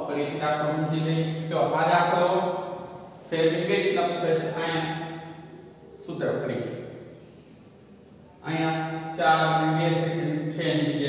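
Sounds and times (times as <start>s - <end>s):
man speaking in sing-song voice: 3.3s - 5.0s, 6.0s - 6.7s, 8.4s - 11.0s.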